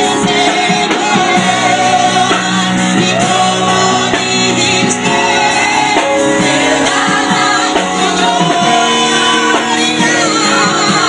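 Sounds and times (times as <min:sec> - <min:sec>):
woman singing gospel into microphone: 0:00.0 - 0:11.0.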